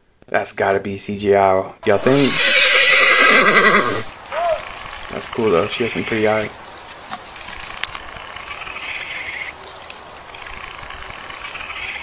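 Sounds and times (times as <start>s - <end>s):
frogs trilling: 2.0s - 12.0s.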